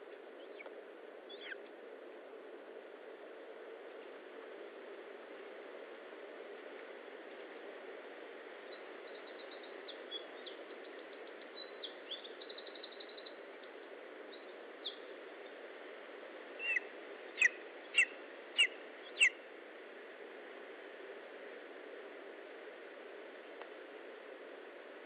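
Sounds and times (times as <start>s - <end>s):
background hiss: 0.0s - 25.0s
high bird trills: 16.6s - 19.4s
loud sharp bird calls: 16.6s - 19.4s.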